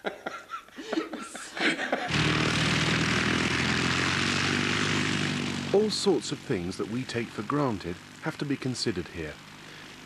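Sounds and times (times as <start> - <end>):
propeller aircraft engine droning: 2.1 - 10.0.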